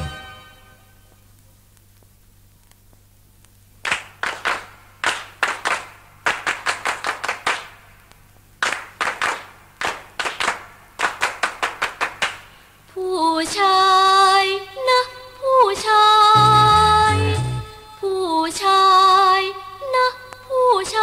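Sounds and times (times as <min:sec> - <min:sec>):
tape hum and hiss: 0:00.0 - 0:21.0
rhythmic handclaps: 0:03.8 - 0:08.0, 0:08.6 - 0:12.6.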